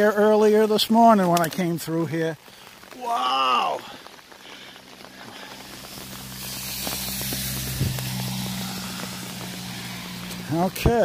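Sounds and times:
footsteps on wet dirt: 0.0 - 11.0
rushing hiss: 2.4 - 11.0
vehicle engine hum: 4.1 - 11.0.

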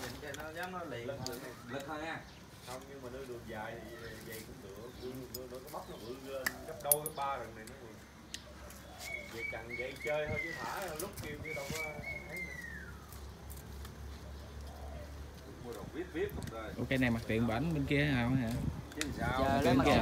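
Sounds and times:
wire clinking and rustling: 4.1 - 7.8
sharp metallic clicks: 6.4 - 8.5.

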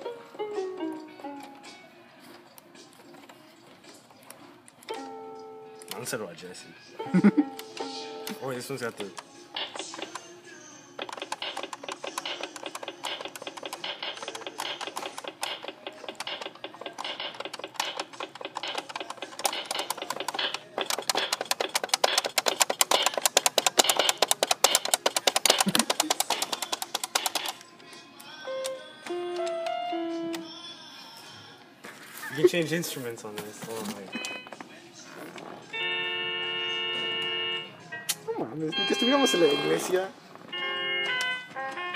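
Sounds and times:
toy electronic keyboard notes: 4.9 - 6.2, 11.0 - 27.6, 28.4 - 30.6, 35.7 - 41.9.

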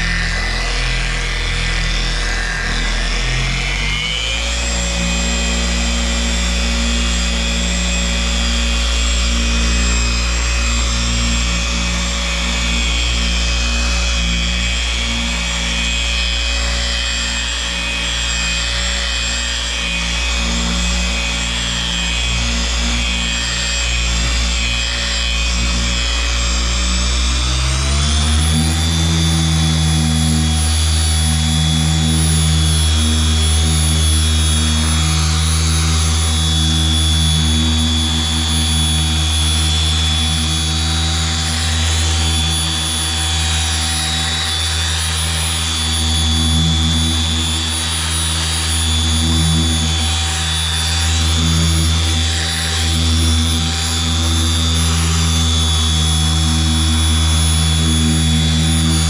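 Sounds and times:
electric polisher running: 0.0 - 59.0.

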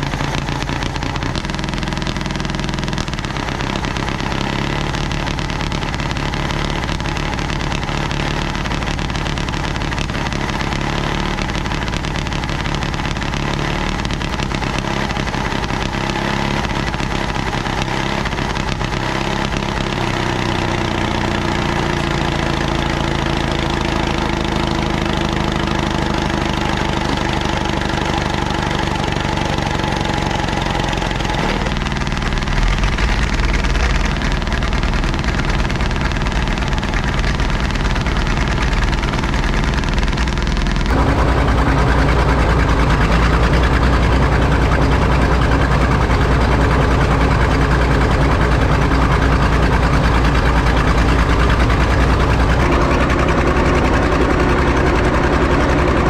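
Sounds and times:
diesel engine rumble: 0.0 - 56.0
small gasoline engine running: 0.0 - 56.0.

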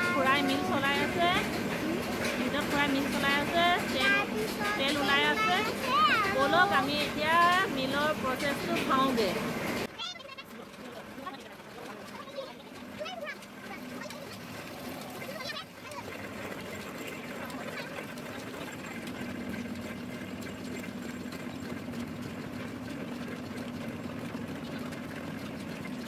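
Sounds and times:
oil mill machinery running: 0.0 - 26.0.

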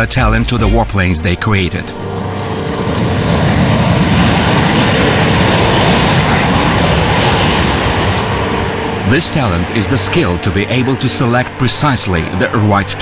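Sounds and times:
jet engines at high thrust: 1.8 - 13.0.

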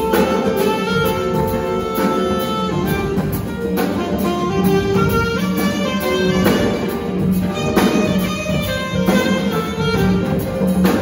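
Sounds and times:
jazz band playing: 0.0 - 11.0.

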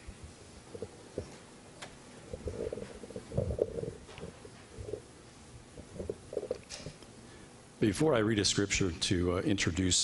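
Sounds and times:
microphone handling rumbles and bumps: 2.2 - 5.0, 5.7 - 6.6.

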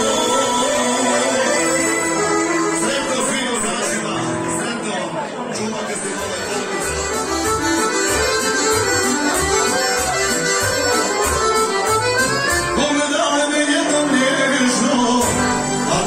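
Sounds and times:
folk band with accordion: 0.0 - 16.0.

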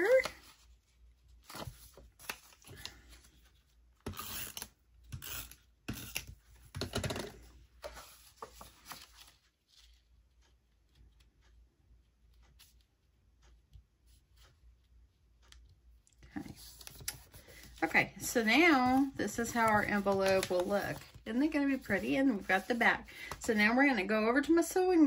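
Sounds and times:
paper rustling and scraping: 0.0 - 6.3, 7.8 - 10.1, 16.4 - 23.4.

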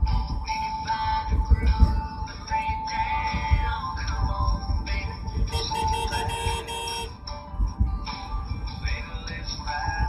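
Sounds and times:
song with vocals: 0.0 - 7.2, 8.0 - 10.0
car driving rumble: 0.0 - 10.0.

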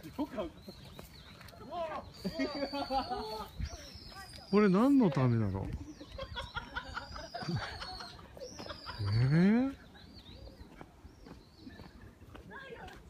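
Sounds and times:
people laughing: 2.2 - 3.6, 5.6 - 9.5.

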